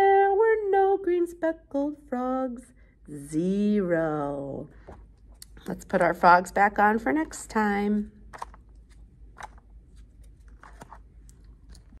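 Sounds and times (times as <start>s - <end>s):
paper crackling and rustling: 8.3s - 12.0s.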